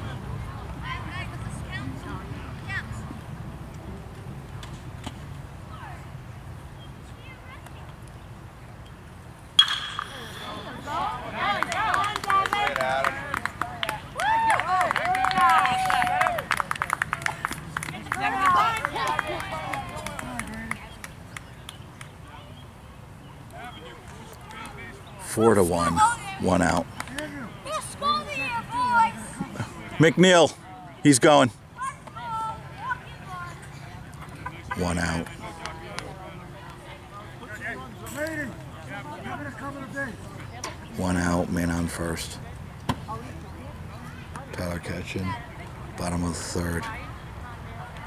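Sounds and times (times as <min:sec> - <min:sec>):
bat cracking on ball: 0:09.6 - 0:10.8
spectators shouting and cheering: 0:09.6 - 0:20.7
people clapping: 0:11.4 - 0:22.1, 0:35.2 - 0:36.8.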